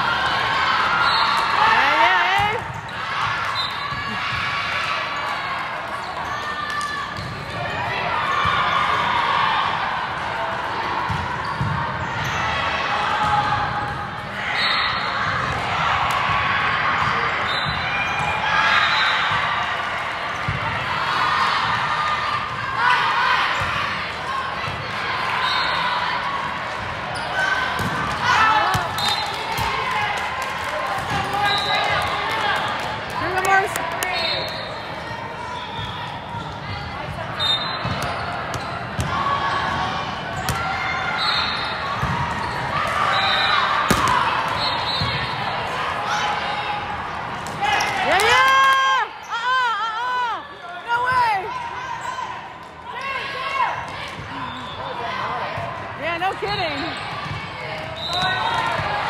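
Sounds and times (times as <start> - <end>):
voices of players and spectators: 0.0 - 59.0
volleyball being struck: 43.8 - 44.3.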